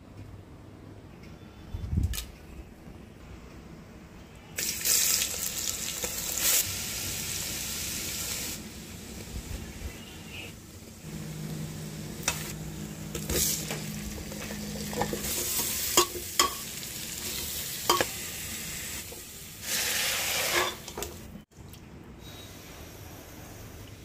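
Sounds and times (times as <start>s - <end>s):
spices sizzling in hot oil: 4.6s - 21.3s.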